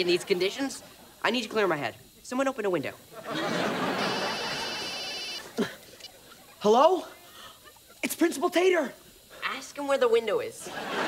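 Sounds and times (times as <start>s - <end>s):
studio audience laughter: 3.1s - 8.0s, 10.7s - 11.0s
cell phone ringing: 3.8s - 6.3s.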